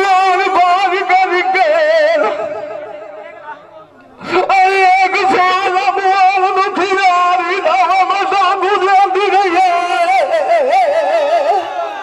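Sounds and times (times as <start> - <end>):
man singing through a microphone: 0.0 - 3.2, 4.2 - 12.0.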